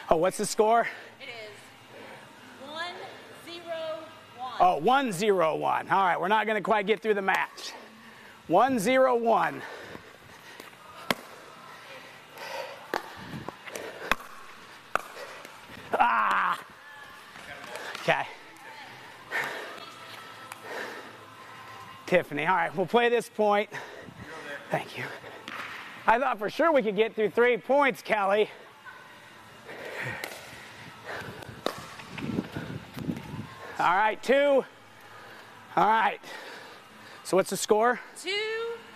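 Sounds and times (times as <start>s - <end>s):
faint background noise: 0.0s - 38.9s
pickleball paddle pops: 14.1s - 15.2s
plastic ball bouncing on court: 14.1s - 15.2s.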